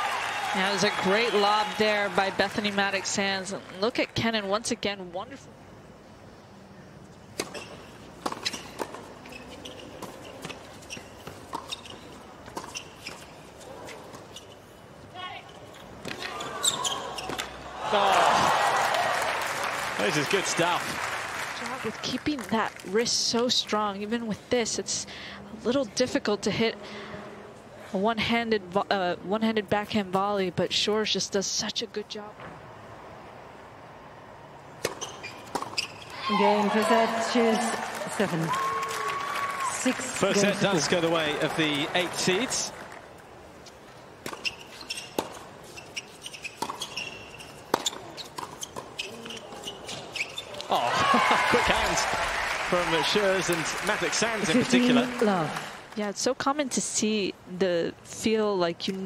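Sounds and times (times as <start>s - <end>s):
tennis ball bouncing: 7.3s - 14.4s, 16.0s - 17.7s, 34.8s - 38.3s, 43.6s - 50.6s
tennis ball impact: 34.8s - 38.2s
rackets striking tennis ball: 46.3s - 49.7s
crowd voices: 50.6s - 55.9s.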